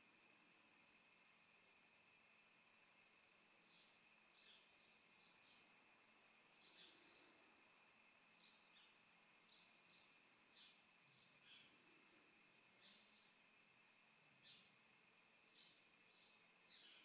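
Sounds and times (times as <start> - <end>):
faint high whine: 0.0 - 17.0
faint bird chirps: 3.6 - 5.8, 6.4 - 13.5, 14.3 - 17.0.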